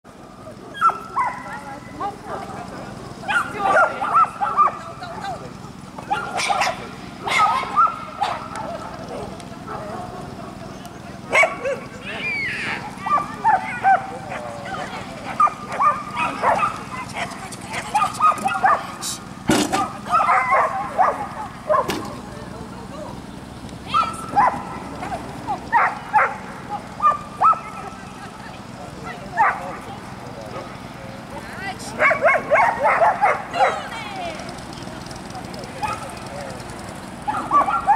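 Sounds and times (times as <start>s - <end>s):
people calling out: 0.6s - 37.9s
dog barking: 0.7s - 2.5s, 3.3s - 4.9s, 6.1s - 10.6s, 11.3s - 11.9s, 13.0s - 14.5s, 15.3s - 19.0s, 19.8s - 22.0s, 24.0s - 28.0s, 29.4s - 29.8s, 32.0s - 33.8s, 37.3s - 37.9s.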